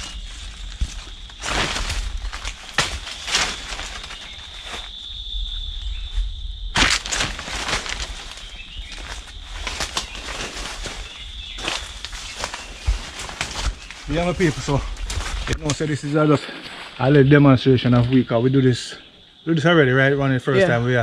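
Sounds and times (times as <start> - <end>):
loud brush crunch: 0.0 - 5.1, 6.8 - 17.2
footsteps through undergrowth: 0.0 - 17.3.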